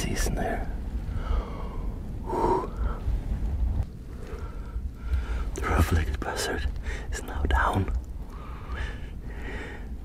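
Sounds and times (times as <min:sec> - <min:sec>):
steady low rumble: 0:00.0 - 0:10.0
man breathing: 0:01.1 - 0:03.1, 0:08.2 - 0:10.0.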